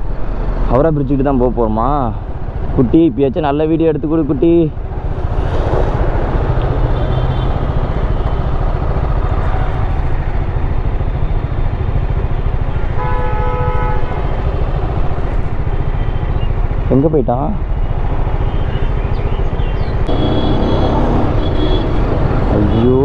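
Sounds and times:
city traffic: 0:00.0 - 0:23.0
motorcycle rumbling: 0:00.0 - 0:23.0
vehicle horn: 0:06.9 - 0:07.7, 0:12.8 - 0:14.6, 0:20.1 - 0:22.9.

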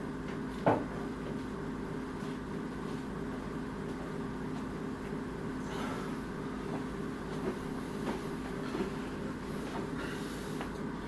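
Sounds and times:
mechanical hum and rumble: 0:00.0 - 0:11.0.

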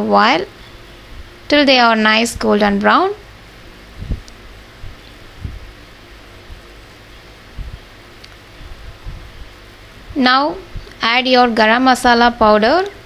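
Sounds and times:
soft low thumps: 0:03.9 - 0:11.0.

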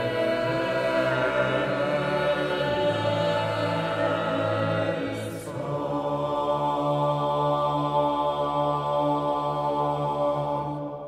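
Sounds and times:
male choir singing a cappella: 0:00.0 - 0:11.0.

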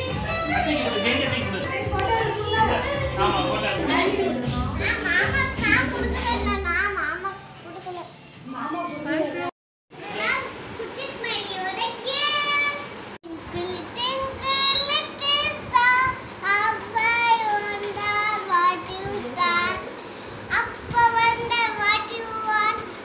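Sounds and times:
girl talking in a high voice: 0:10.0 - 0:14.9.

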